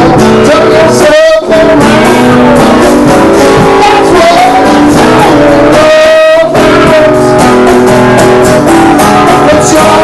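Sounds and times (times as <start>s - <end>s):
man singing: 0.0s - 10.0s
strummed acoustic guitar: 0.0s - 10.0s.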